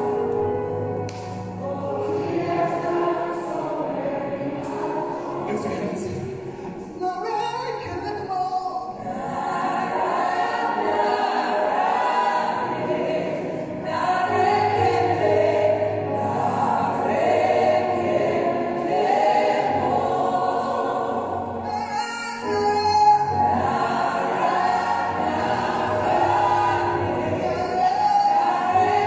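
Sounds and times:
church choir singing a hymn: 0.0s - 7.0s, 8.8s - 29.0s.

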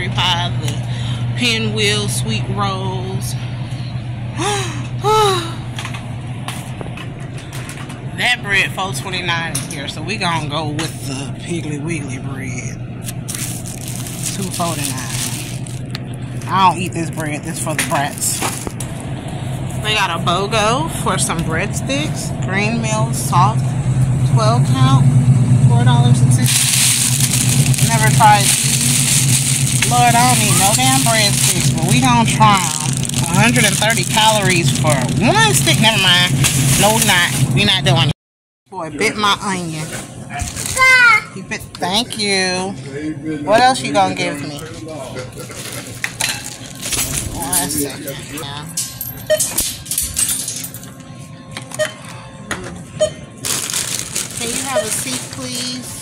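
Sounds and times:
low mechanical hum: 0.0s - 38.1s, 38.7s - 56.0s
grocery items clattering and rustling: 5.8s - 8.0s, 13.0s - 19.0s, 26.4s - 38.1s, 39.4s - 41.0s, 44.6s - 56.0s
store background music: 8.2s - 18.8s, 19.4s - 38.1s, 38.8s - 56.0s
plastic bags crinkling: 13.0s - 19.0s, 26.5s - 37.7s, 40.4s - 40.9s, 45.4s - 47.9s, 53.4s - 56.0s.

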